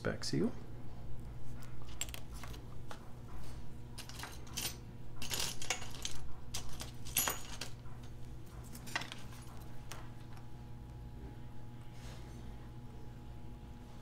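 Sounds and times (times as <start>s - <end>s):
small metal parts clinking: 1.8s - 2.6s, 4.0s - 7.9s, 8.7s - 9.5s.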